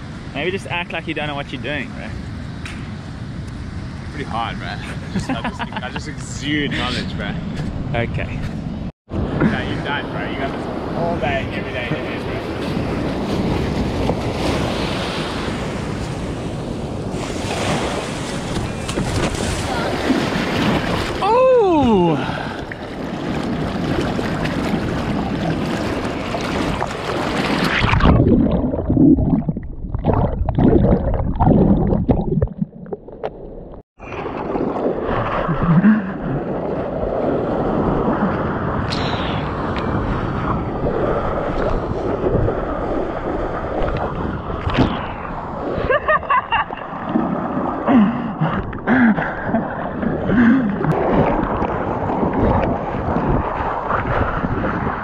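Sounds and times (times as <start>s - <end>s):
wind on microphone: 6.0s - 32.8s, 34.0s - 55.0s
muffled underwater surging: 9.1s - 55.0s
seawater splashing and rushing: 9.1s - 55.0s.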